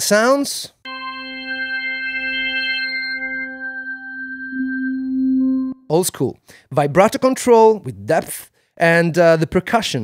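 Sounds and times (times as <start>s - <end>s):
organ sustained note: 0.9s - 5.8s.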